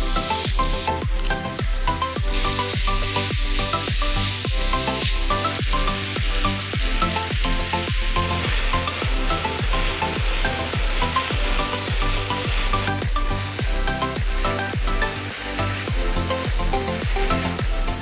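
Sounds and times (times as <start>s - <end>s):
background music with steady beat: 0.0s - 18.0s
vegetables frying in a pan: 0.0s - 18.0s.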